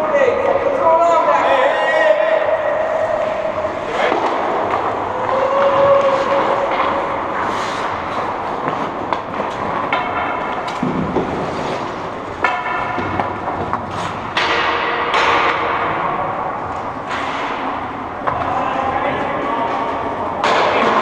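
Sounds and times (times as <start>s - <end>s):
skate blades scraping ice: 3.0s - 9.8s, 10.9s - 12.1s, 13.8s - 14.2s
hockey sticks and puck knocking: 4.0s - 18.6s.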